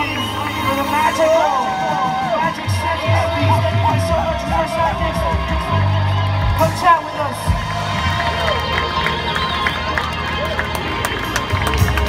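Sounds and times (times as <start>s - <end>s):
crowd voices: 0.0s - 12.0s
heavy bass: 0.0s - 12.0s
live band music: 0.0s - 12.0s.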